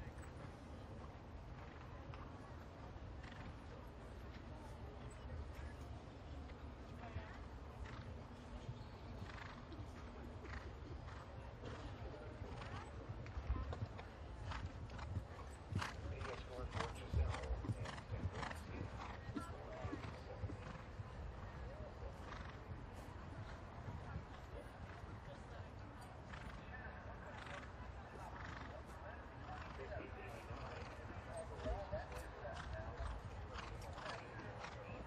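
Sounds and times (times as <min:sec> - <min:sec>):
horse hoofbeats cantering on grass: 0:05.3 - 0:25.5, 0:27.4 - 0:35.0.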